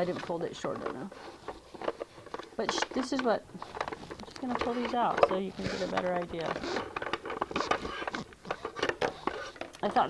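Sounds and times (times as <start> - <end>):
plastic markers clicking and clattering: 0.0 - 10.0.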